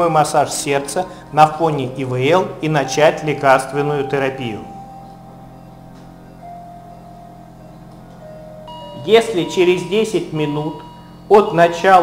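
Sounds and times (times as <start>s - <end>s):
quiet music of sustained notes: 0.0s - 12.0s.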